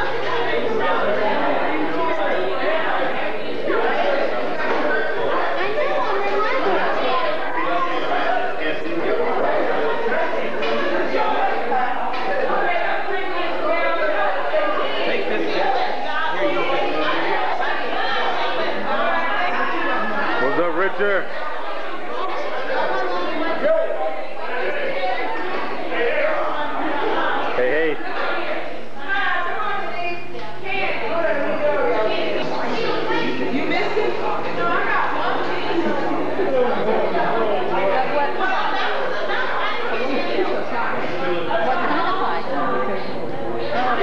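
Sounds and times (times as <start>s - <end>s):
hubbub of overlapping conversation: 0.0s - 44.0s.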